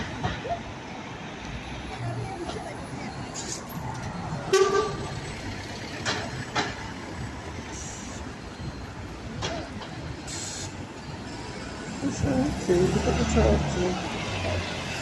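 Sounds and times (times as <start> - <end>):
bus pulling away: 0.0 - 15.0
vehicles passing: 0.0 - 15.0.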